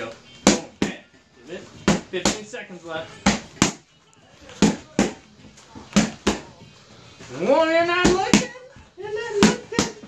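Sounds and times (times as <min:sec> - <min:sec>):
boxing gloves smacking mitts: 0:03.2 - 0:03.9, 0:04.6 - 0:05.3.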